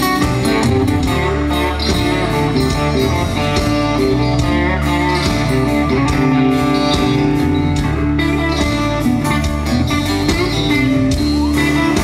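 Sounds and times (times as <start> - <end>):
bass guitar: 0.0 - 12.0
electric guitars: 0.0 - 12.0
steady drum beat: 0.0 - 12.0.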